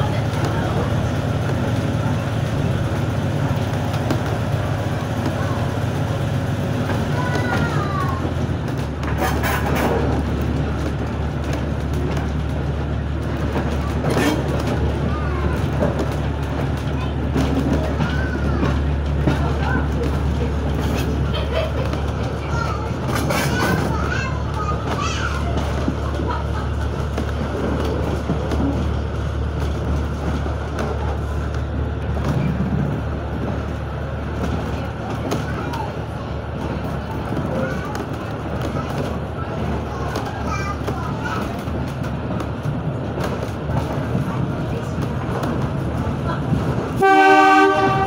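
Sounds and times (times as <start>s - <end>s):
passengers talking: 0.0s - 48.0s
railway carriage rumbling: 0.0s - 48.0s.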